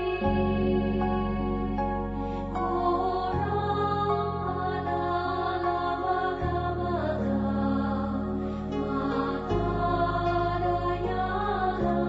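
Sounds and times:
slow calm chant-like music: 0:00.0 - 0:12.0.

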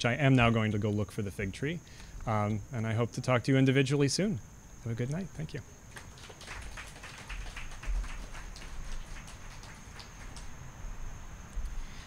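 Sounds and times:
audience clapping: 0:05.9 - 0:10.6.

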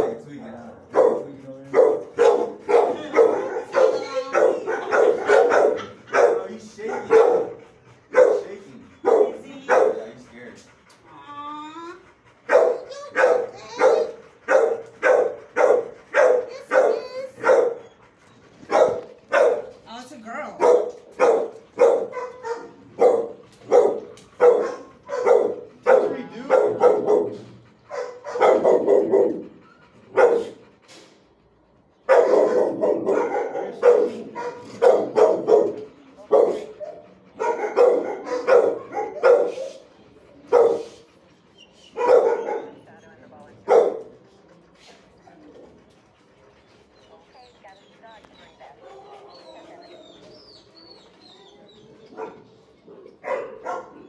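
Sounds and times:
dogs barking: 0:00.0 - 0:11.1, 0:12.0 - 0:54.0
dog whining: 0:01.5 - 0:10.5, 0:11.1 - 0:30.8, 0:45.2 - 0:54.0.

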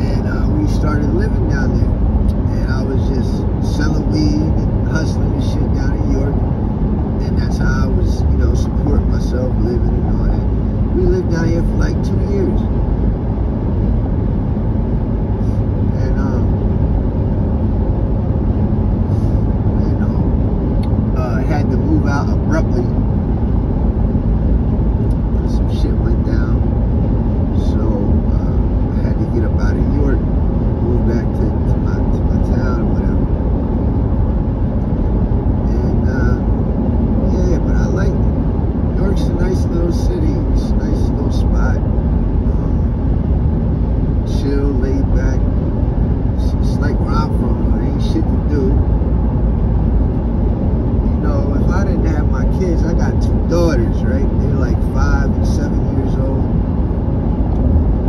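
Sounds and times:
car road and engine noise: 0:00.0 - 0:58.0.

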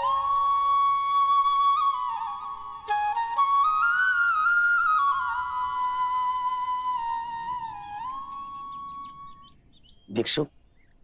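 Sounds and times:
bamboo flute: 0:00.0 - 0:09.4
birds chirping: 0:03.6 - 0:11.0.

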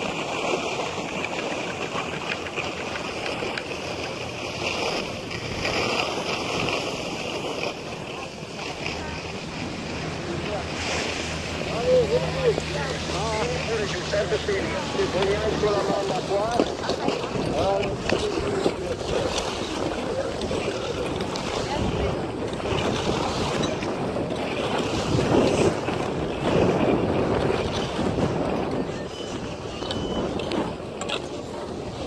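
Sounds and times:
wind on microphone: 0:00.0 - 0:32.0
people's voices: 0:06.5 - 0:24.2, 0:28.4 - 0:32.0.

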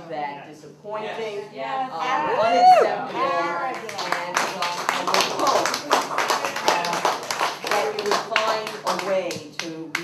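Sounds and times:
people talking: 0:00.0 - 0:10.0
audience clapping: 0:03.6 - 0:10.0.

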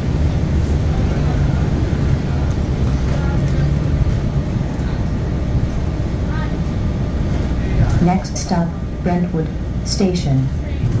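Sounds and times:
bus drivetrain drone: 0:00.0 - 0:11.0
road noise: 0:00.0 - 0:11.0.

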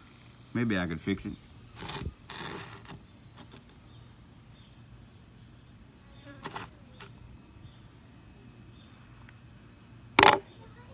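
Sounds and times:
plastic scraping on wood: 0:01.8 - 0:03.8, 0:06.3 - 0:07.1.

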